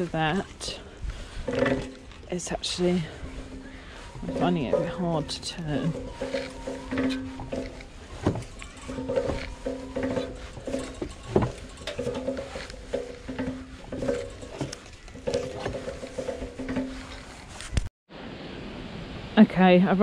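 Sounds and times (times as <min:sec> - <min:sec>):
cable-stripping machine creaking: 0:00.0 - 0:17.9.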